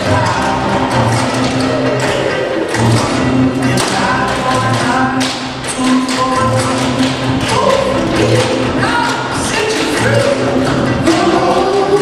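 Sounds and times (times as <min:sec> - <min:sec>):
loud backing music: 0:00.0 - 0:12.0.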